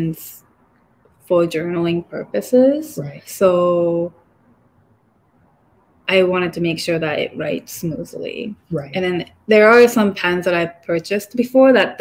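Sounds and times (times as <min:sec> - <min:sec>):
woman speaking: 0:00.0 - 0:00.5, 0:01.2 - 0:04.2, 0:06.1 - 0:12.0
faint room hiss: 0:00.0 - 0:12.0.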